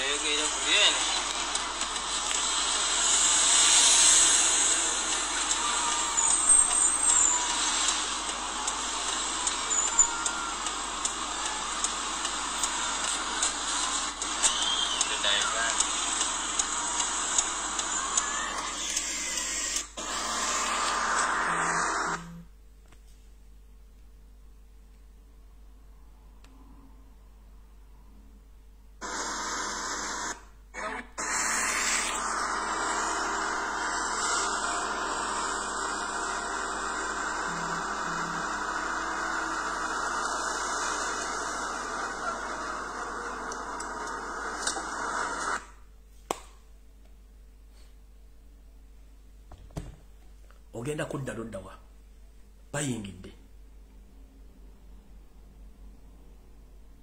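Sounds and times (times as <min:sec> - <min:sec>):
loud rushing hiss: 0:00.2 - 0:10.2
hiss: 0:02.4 - 0:06.2.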